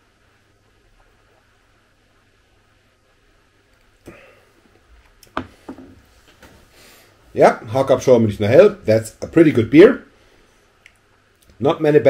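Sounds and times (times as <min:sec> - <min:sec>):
person exhaling: 0:04.0 - 0:04.7.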